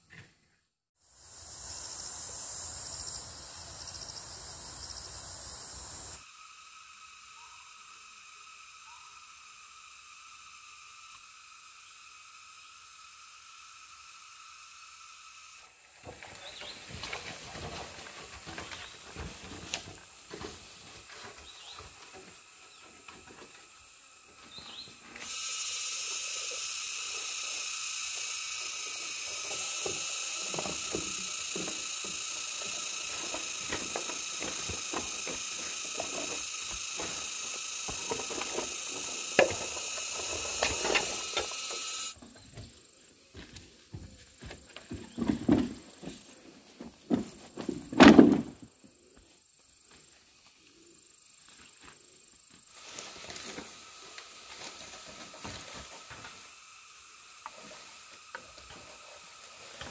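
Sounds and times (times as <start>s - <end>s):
forest insects chorus: 1.0s - 59.9s
rustling and snapping undergrowth: 16.1s - 23.4s.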